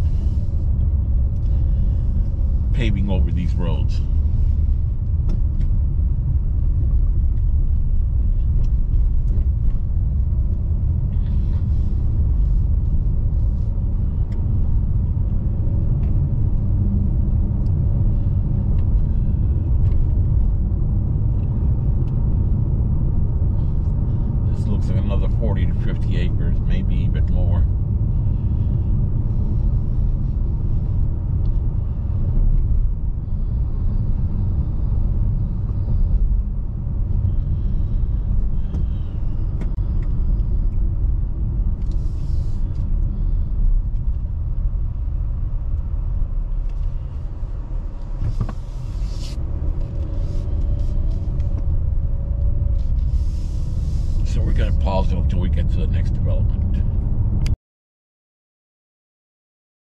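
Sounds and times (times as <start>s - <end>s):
car tyres and engine rumble: 0.0s - 57.6s.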